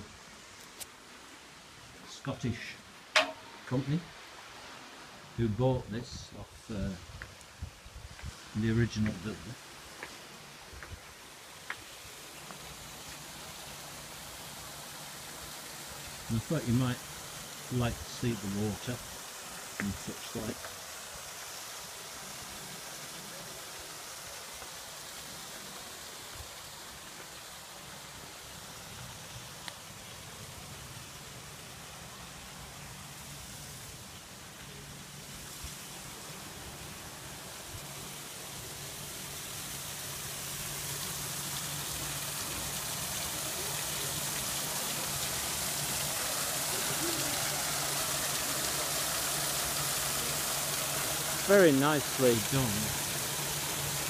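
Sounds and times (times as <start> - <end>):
water rushing from waterfall: 0.0 - 54.0.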